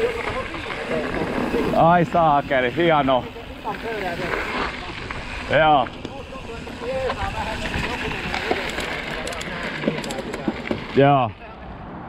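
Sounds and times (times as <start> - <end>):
bike tyres rattling on rough ground: 0.0 - 11.4.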